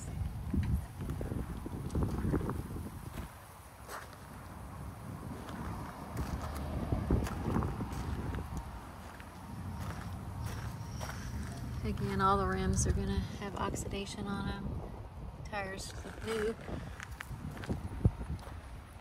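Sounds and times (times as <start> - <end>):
footsteps on gravel: 0.6 - 4.4, 5.2 - 12.8, 15.8 - 18.8.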